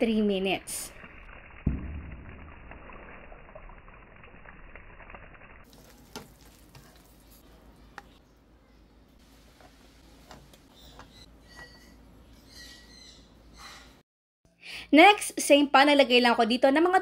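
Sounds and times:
hotdogs sizzling in a pan: 2.4 - 7.4.

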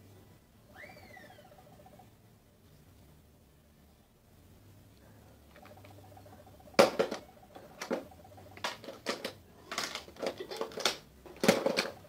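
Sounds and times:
faint whistled call: 0.7 - 1.6
soft pulses: 0.7 - 2.1, 5.6 - 8.8.

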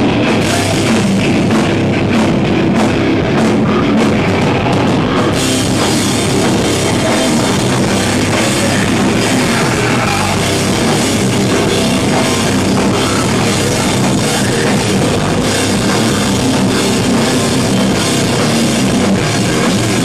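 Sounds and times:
distorted electric guitars: 0.0 - 20.0
pounding drum kit: 0.0 - 20.0.

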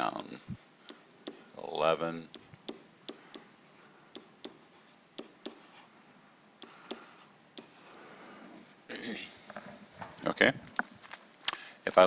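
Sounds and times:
stylus tapping on tablet screen: 0.8 - 1.5, 2.2 - 3.5, 4.1 - 5.7, 6.6 - 7.8.

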